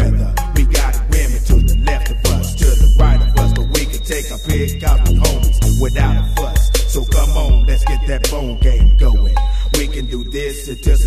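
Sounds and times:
deep bass line: 0.0s - 10.2s
rapping over a beat: 0.0s - 11.0s.

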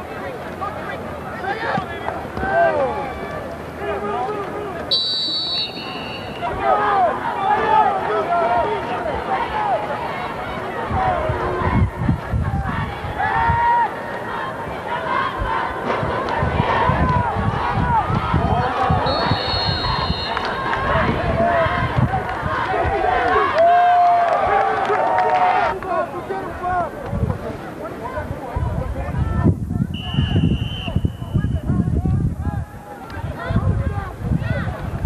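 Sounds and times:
crowd yelling and cheering: 0.0s - 35.0s
short high whistle blast: 4.9s - 6.5s, 19.1s - 20.4s.

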